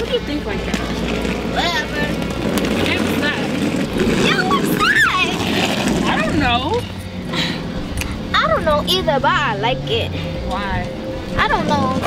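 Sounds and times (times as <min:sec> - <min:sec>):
girls talking: 0:00.0 - 0:07.1, 0:07.7 - 0:12.0
low rumble of street noise: 0:00.0 - 0:12.0.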